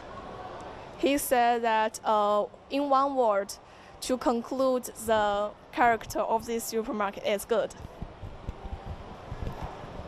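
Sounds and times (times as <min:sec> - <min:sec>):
large indoor hall background noise: 0:00.0 - 0:10.0
soft low thuds: 0:07.8 - 0:09.9.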